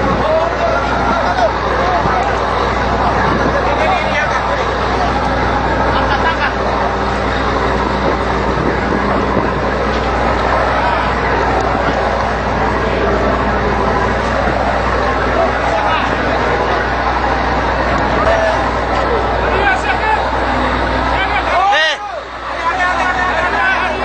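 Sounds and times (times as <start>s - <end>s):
wind noise: 0.0s - 4.4s, 6.9s - 15.6s
indistinct voices: 0.0s - 24.0s
ship machinery rumble: 0.0s - 24.0s.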